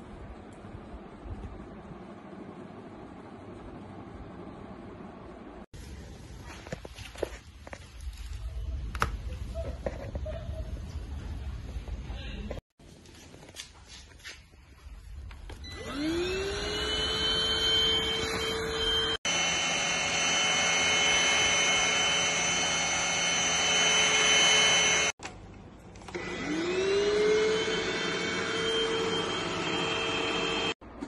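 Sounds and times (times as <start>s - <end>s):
vacuum cleaner motor whine: 15.5s - 25.2s, 26.1s - 30.8s.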